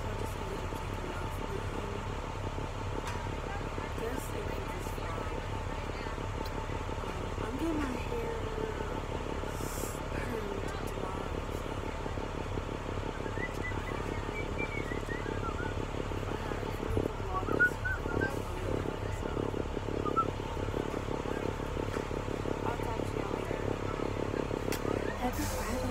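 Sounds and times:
diesel engine idling: 0.0 - 25.9.

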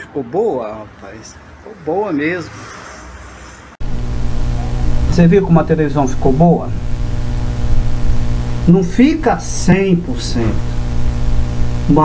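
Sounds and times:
low electrical hum: 3.8 - 12.0.

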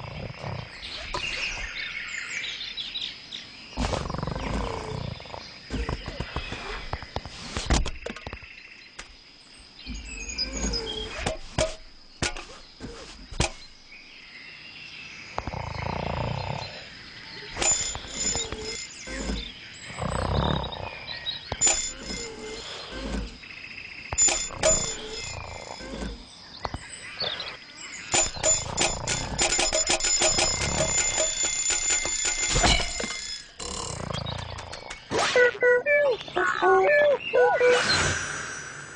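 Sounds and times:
alarm clock bell ringing: 17.6 - 18.9, 21.6 - 22.6, 24.2 - 25.7, 28.0 - 33.6
sharp clicks: 28.1 - 35.1.

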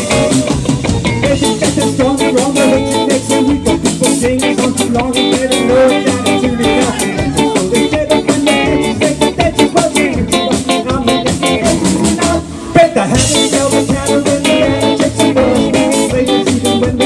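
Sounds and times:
bass guitar: 0.0 - 17.0
drum kit beat: 0.0 - 17.0.

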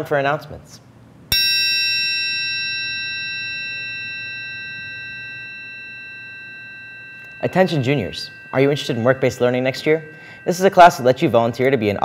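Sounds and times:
metal triangle ringing: 1.3 - 12.0.

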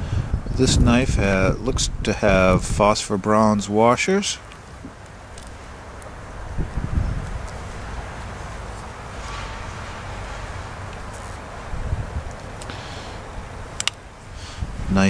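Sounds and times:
wind rumbling on microphone: 0.0 - 3.6, 4.8 - 12.6, 14.3 - 15.0.

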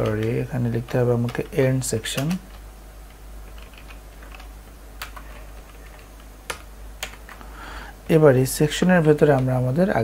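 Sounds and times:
low steady hum: 0.0 - 10.0
sharp keyboard clicks: 3.5 - 7.4.

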